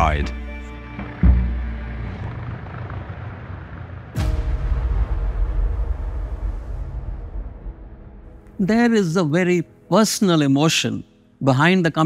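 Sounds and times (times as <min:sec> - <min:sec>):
low steady rumble: 0:00.0 - 0:08.6
deep cinematic bass hit: 0:04.1 - 0:08.5.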